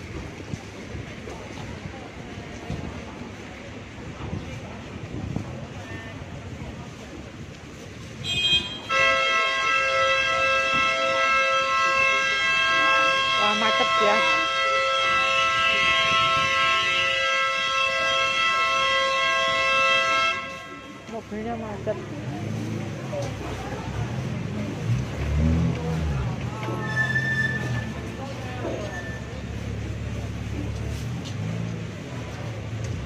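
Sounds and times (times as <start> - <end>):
street noise: 0.0 - 33.0
two-tone vehicle horn: 8.2 - 21.1.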